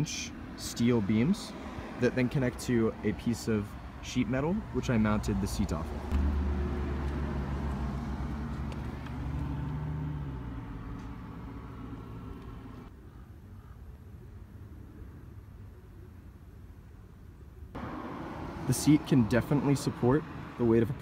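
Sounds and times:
vehicle engine humming: 0.0s - 12.9s, 17.7s - 21.0s
faint outdoor background: 0.0s - 21.0s.

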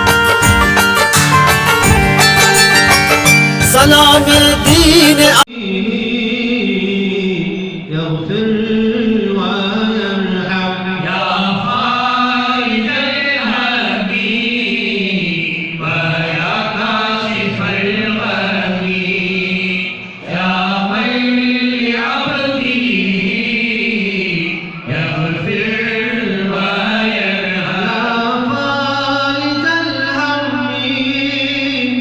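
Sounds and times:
men chanting: 3.8s - 30.3s.

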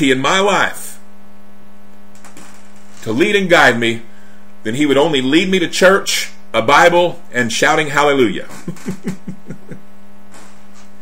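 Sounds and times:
buzzy electrical hum: 0.0s - 11.0s.

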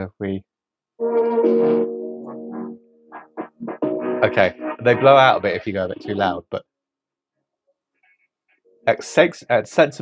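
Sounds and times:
electronic music with synth chords: 1.4s - 6.2s.

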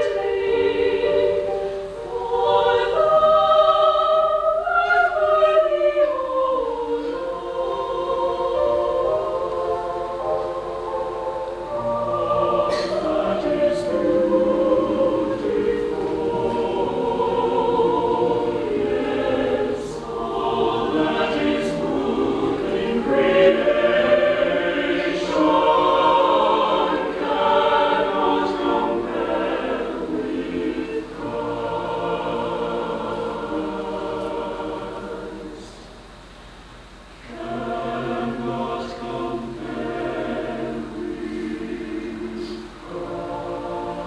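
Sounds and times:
mixed choir singing: 0.0s - 36.1s, 37.2s - 44.0s.

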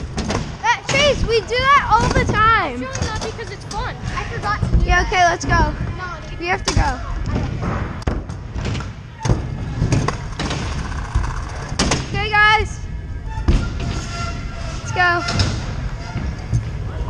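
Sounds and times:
scooter wheels rolling on concrete: 9.7s - 11.8s.

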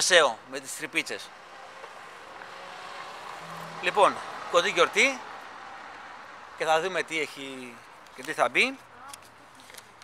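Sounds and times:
car passing: 1.1s - 8.1s.

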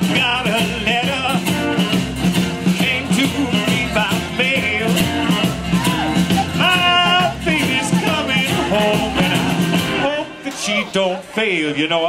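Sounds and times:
bass line: 0.0s - 11.0s
electric and acoustic guitars: 0.0s - 11.5s
man singing with vibrato: 0.0s - 12.0s.

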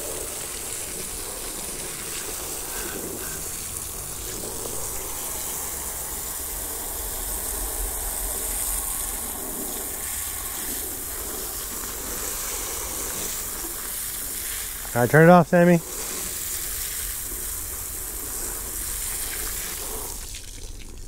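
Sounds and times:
hose water spraying on metal: 0.0s - 21.0s.

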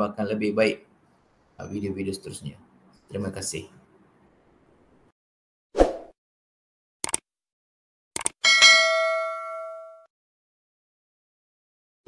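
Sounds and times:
quick clicks: 7.0s - 7.2s, 8.2s - 8.4s
bright bell ding: 8.4s - 10.1s.

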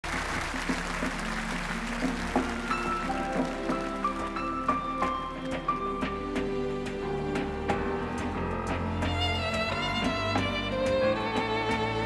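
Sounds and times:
audience applause: 0.0s - 6.1s
grand piano notes and chords: 1.1s - 12.0s.

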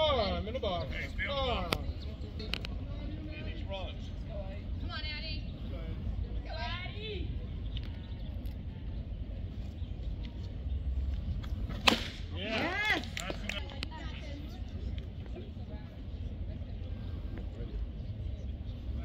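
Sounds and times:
low outdoor rumble: 0.0s - 19.0s
baseball bat cracking ball: 11.7s - 13.6s.

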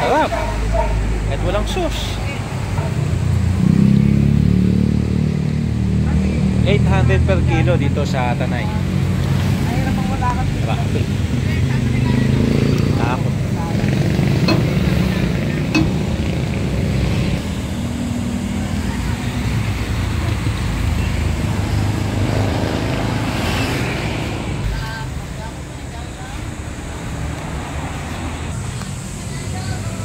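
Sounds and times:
road traffic rumble: 0.0s - 30.0s
people talking: 9.6s - 16.3s, 29.2s - 30.0s
sharp knocks: 14.3s - 17.4s.

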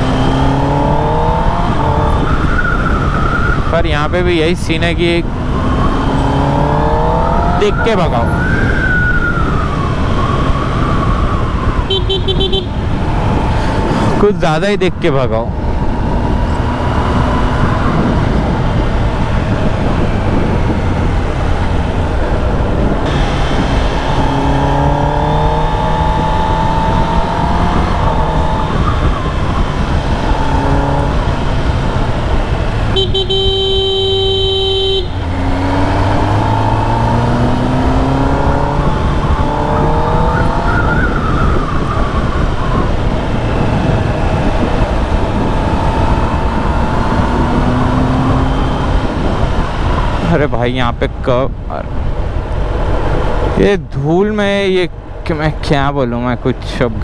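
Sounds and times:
motorcycle engine revving: 0.0s - 14.2s, 15.3s - 50.4s
wind rush: 0.0s - 33.8s, 35.1s - 57.0s
vehicle horn: 11.8s - 12.8s, 32.9s - 35.3s.

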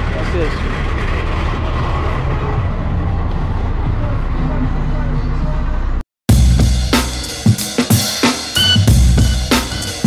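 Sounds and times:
bus diesel engine idling: 0.0s - 6.0s.

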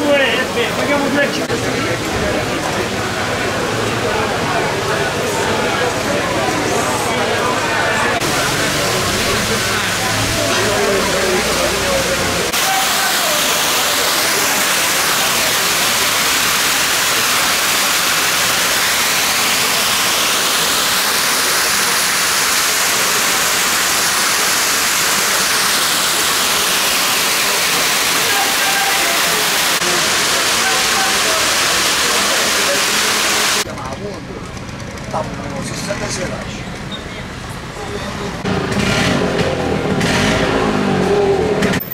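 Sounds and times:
water falling and splashing: 8.1s - 33.7s.

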